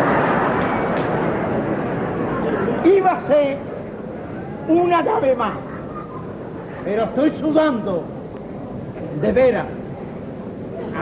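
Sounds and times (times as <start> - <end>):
audience laughing: 1.8 - 3.0, 5.6 - 6.9.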